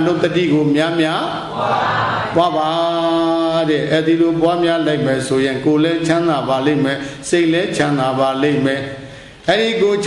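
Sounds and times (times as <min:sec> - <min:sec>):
monk chanting: 0:02.2 - 0:10.0.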